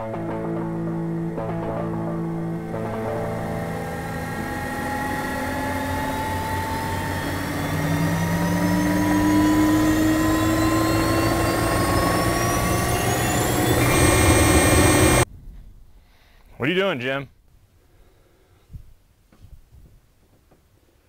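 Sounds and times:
rising drone of layered tones: 0:00.0 - 0:15.3
low steady hum: 0:00.0 - 0:16.3.

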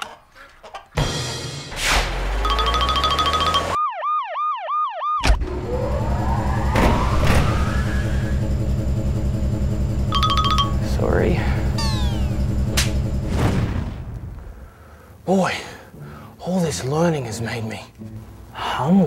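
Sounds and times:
whooping alarm siren: 0:02.5 - 0:12.6
sweeping whistle glides: 0:05.4 - 0:08.7
electronic beeping: 0:10.1 - 0:10.9.

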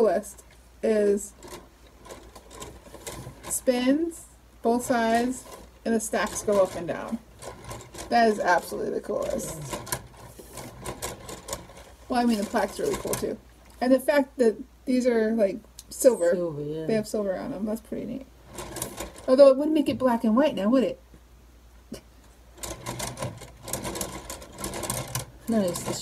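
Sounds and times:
plastic gears clicking and rattling: 0:01.2 - 0:03.9, 0:04.7 - 0:13.4, 0:18.4 - 0:19.5, 0:22.6 - 0:26.0.

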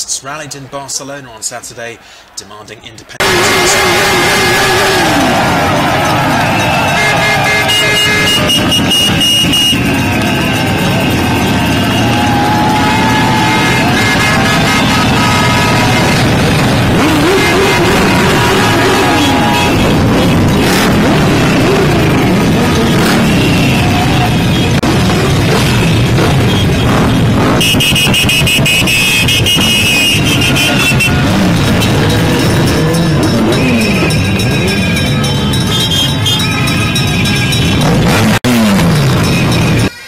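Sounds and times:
motorcycle engines rumbling: 0:03.0 - 0:40.0
high-pitched horn toots: 0:03.2 - 0:40.0.

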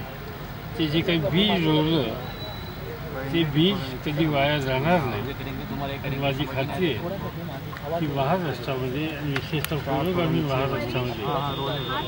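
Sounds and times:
man speaking: 0:03.3 - 0:11.9.

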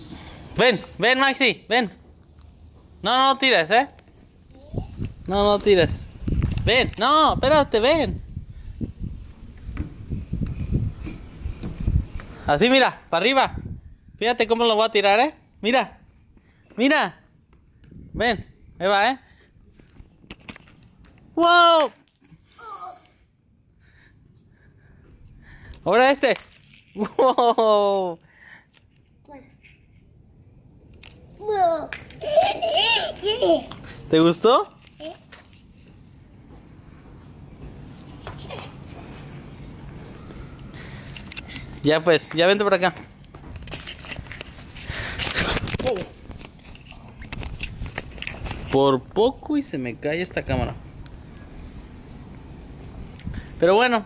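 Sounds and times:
camera handling rustling: 0:40.6 - 0:41.8, 0:43.6 - 0:48.8.

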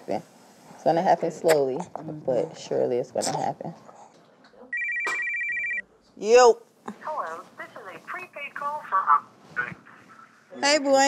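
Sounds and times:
woman speaking: 0:00.0 - 0:03.8
phone ringing electronic trill: 0:04.8 - 0:05.8.

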